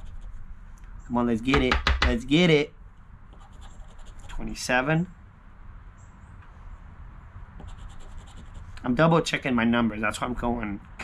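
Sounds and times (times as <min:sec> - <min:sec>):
scratching lottery ticket coating: 0:03.4 - 0:04.6.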